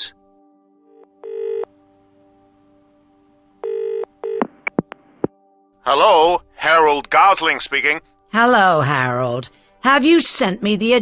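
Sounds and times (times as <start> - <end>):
faint background music: 0.0 - 11.0
telephone ringing: 1.2 - 1.7, 3.6 - 4.5.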